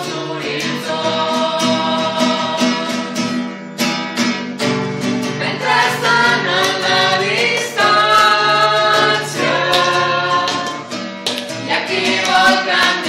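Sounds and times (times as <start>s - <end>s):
group singing together: 0.0s - 3.5s, 5.1s - 13.0s
strummed acoustic guitar: 0.0s - 13.0s.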